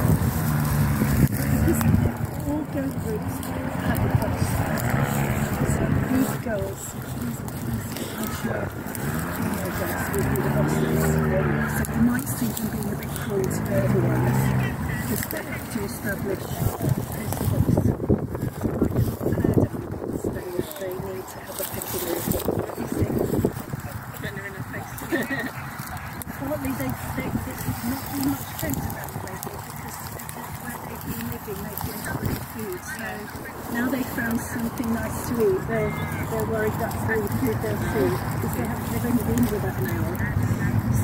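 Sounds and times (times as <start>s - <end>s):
muffled voices talking: 0.0s - 41.0s
steady low rumble: 0.0s - 41.0s
wind buffeting microphone: 0.0s - 41.0s.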